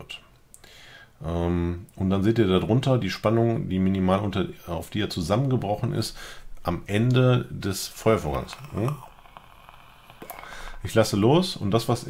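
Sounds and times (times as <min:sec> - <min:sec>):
e-cigarette atomizer hiss and crackle: 0:08.0 - 0:10.9.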